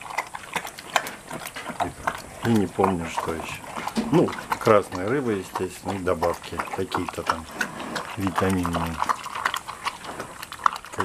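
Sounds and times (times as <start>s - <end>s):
bear chewing and smacking: 0.0s - 11.0s.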